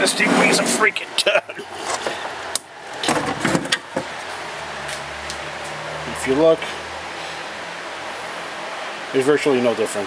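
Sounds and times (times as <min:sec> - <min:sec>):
metal cabinet clunking and scraping: 0:03.0 - 0:04.1.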